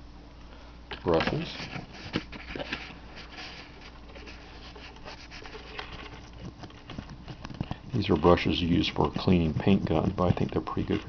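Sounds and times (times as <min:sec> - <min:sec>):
faint steady hum: 0:00.0 - 0:11.0
handling scratches taps and clicks: 0:04.1 - 0:11.0.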